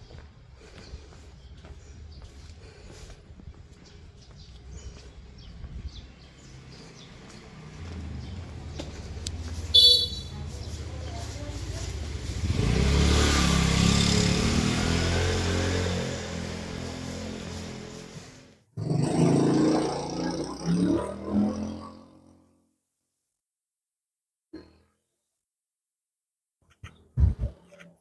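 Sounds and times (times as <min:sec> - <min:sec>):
motorbike engine running: 0:07.7 - 0:14.9
horn beep: 0:09.7 - 0:10.3.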